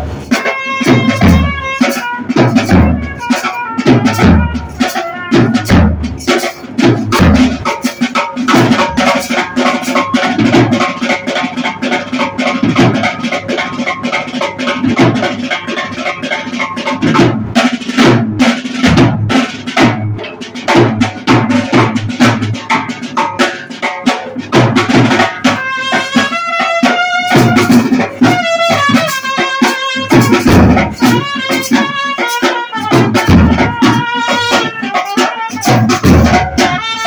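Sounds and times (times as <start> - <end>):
trumpet: 0.0 - 10.4, 24.8 - 37.0
side drum played fast: 0.0 - 37.0.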